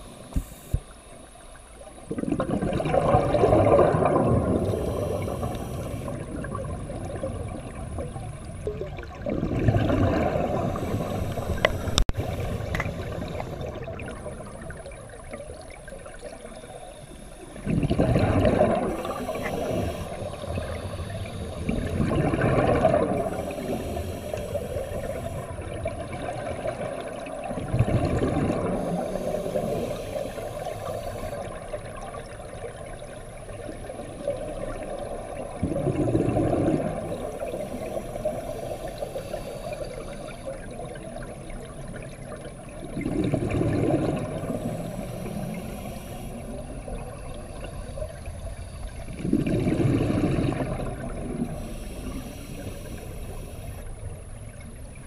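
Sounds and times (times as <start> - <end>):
steady dull hiss: 0.0 - 2.0, 4.6 - 8.7, 10.4 - 17.6, 18.6 - 27.4, 28.4 - 35.6, 36.8 - 42.8, 44.1 - 49.2, 51.0 - 54.8
regulator exhaust bubbles underwater: 0.0 - 55.0.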